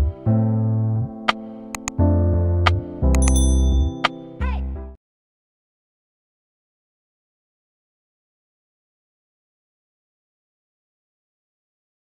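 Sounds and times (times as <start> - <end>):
sharp mouse clicks: 1.8 - 2.0, 3.2 - 3.5
bell-like ding: 3.2 - 4.1.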